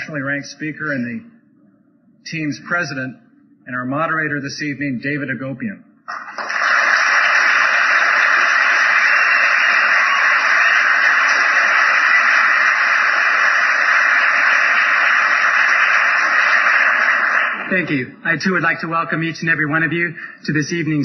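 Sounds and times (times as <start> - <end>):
large audience applauding: 6.1 - 18.0.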